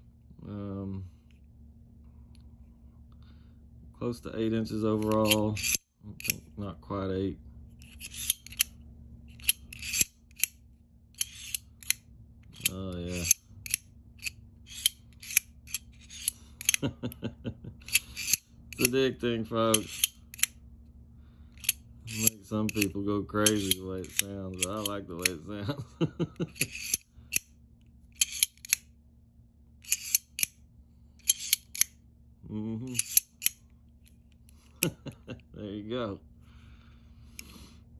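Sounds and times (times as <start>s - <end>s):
knife blade rasping: 4.9s - 6.5s, 7.8s - 10.6s, 11.2s - 12.0s, 12.6s - 16.8s, 17.8s - 19.0s, 19.6s - 20.5s, 21.6s - 25.4s, 26.4s - 27.5s, 28.2s - 28.8s, 29.8s - 30.5s, 31.2s - 31.9s, 32.9s - 33.6s.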